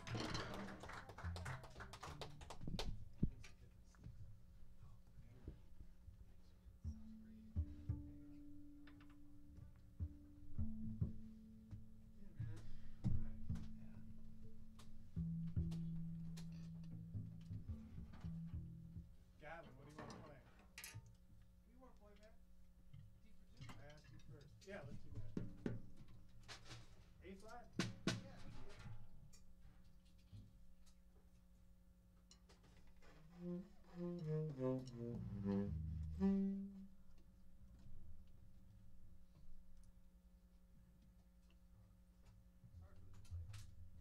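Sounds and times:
double bass notes: 0:05.5 - 0:19.5, 0:33.2 - 0:38.3
drum kit knocks and taps: 0:06.8 - 0:14.0, 0:24.9 - 0:26.8, 0:27.7 - 0:28.9.

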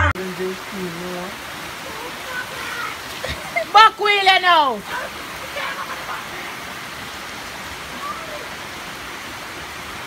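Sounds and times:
heavy rain on road: 0:00.0 - 0:10.0.

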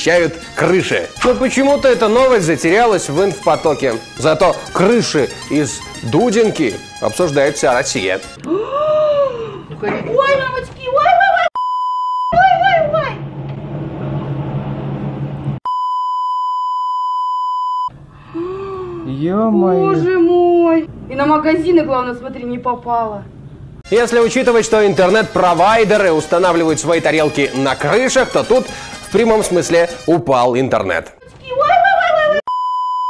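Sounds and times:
woman crying out: 0:08.4 - 0:09.7
censor bleep: 0:11.6 - 0:12.4, 0:15.7 - 0:17.9, 0:32.5 - 0:33.0.

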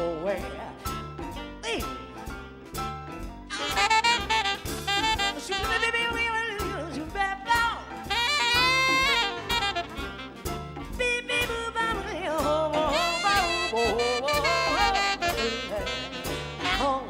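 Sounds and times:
bass and drum beat: 0:00.0 - 0:17.0
saxophone melody: 0:03.5 - 0:06.6, 0:08.0 - 0:11.4, 0:12.7 - 0:17.0.

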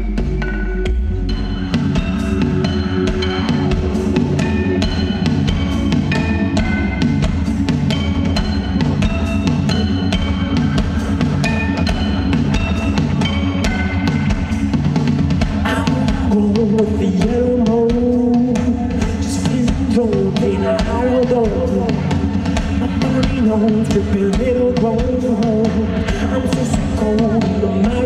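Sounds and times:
deep bass: 0:00.0 - 0:28.0
drum beat: 0:00.0 - 0:28.0.

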